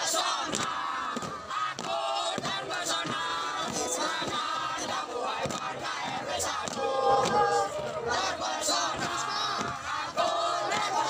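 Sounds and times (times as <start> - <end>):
group chanting and singing a cheer: 0.0 - 11.0.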